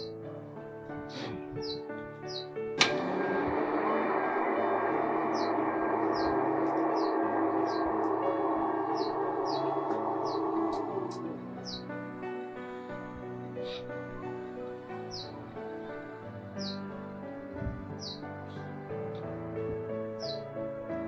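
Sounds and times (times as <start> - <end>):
soft background music: 0.0 - 21.0
steady rushing noise: 3.1 - 13.0
bird chirps: 5.2 - 12.0, 18.0 - 18.6.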